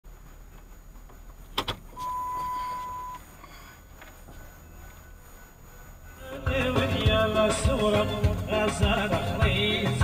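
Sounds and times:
steady electronic beep: 2.0s - 3.7s.

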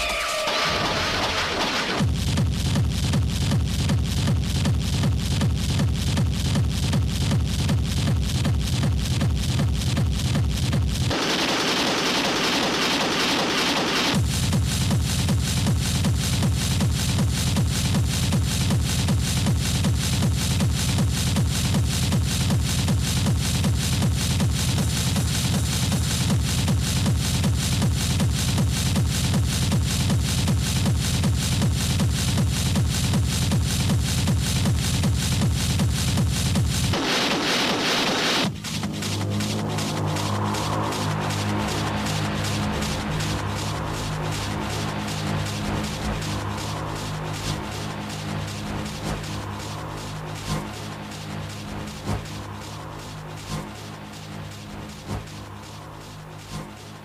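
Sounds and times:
pounding techno kick drum: 0.0s - 57.0s.

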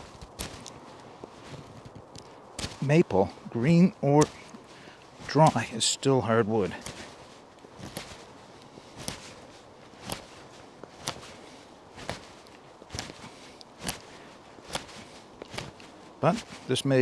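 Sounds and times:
knife shaving wood: 0.0s - 2.9s, 6.5s - 16.8s.

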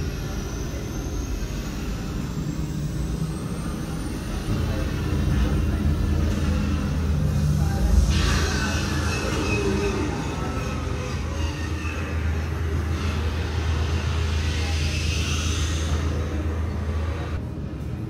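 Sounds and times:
low engine rumble and hum: 0.0s - 18.0s.

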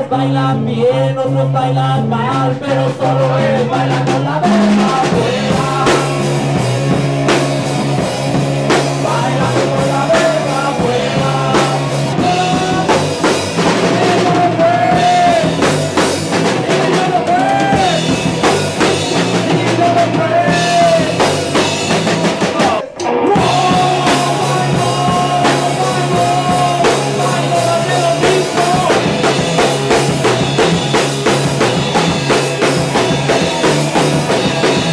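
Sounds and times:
live rock band playing: 0.0s - 34.9s
man singing: 0.0s - 34.9s.

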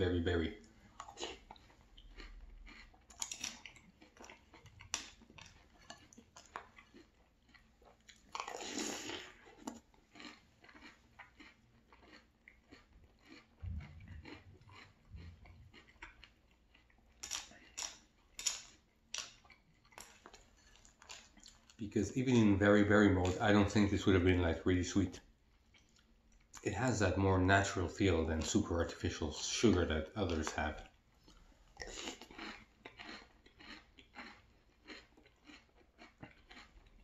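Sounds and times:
person chewing crunchy cereal: 0.0s - 37.0s.

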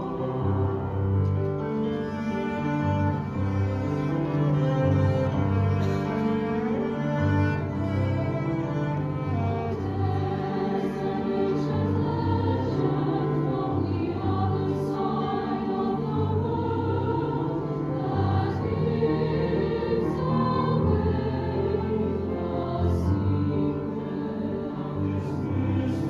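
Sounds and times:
cello: 0.0s - 26.0s
choir singing sustained chords: 0.0s - 26.0s
piano: 0.0s - 26.0s.

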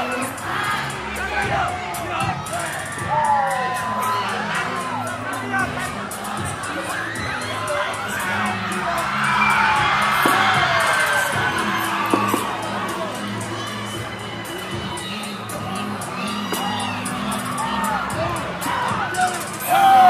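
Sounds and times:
crowd cheering and screaming: 0.0s - 20.0s
music with steady beat: 0.0s - 20.0s.

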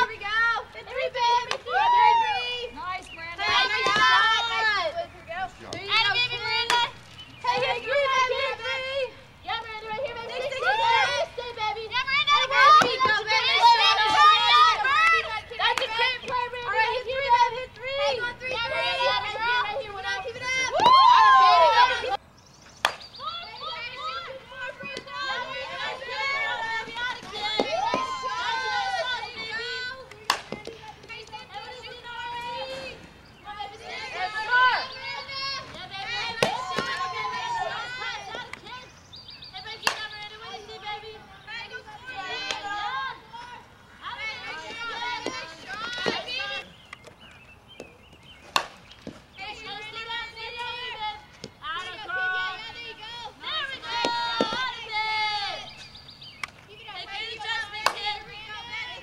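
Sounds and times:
bat cracking a softball: 0.8s - 1.8s, 3.4s - 4.6s, 5.7s - 8.6s, 12.3s - 16.9s, 22.8s - 23.2s, 24.0s - 38.8s, 39.6s - 40.4s, 44.2s - 52.0s, 53.7s - 54.9s, 57.4s - 58.4s.

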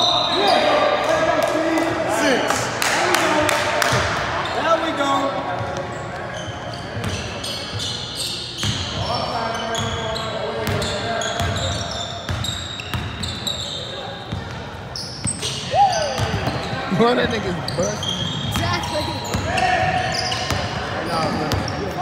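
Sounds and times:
sneakers squeaking on floor: 0.0s - 0.8s, 3.9s - 22.0s
players calling out: 0.0s - 22.0s.

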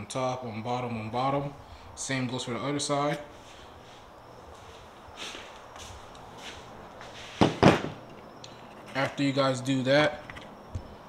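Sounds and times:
soft footsteps: 3.2s - 7.9s.

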